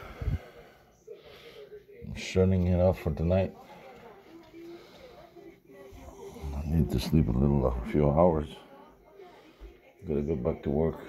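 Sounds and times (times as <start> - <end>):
wheezy breathing: 0.0 - 1.9
man speaking: 2.0 - 3.6, 6.2 - 8.6, 10.1 - 11.0.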